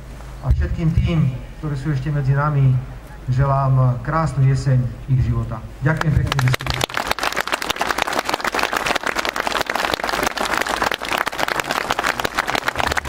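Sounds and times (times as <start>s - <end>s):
crowd applauding: 6.0s - 13.0s.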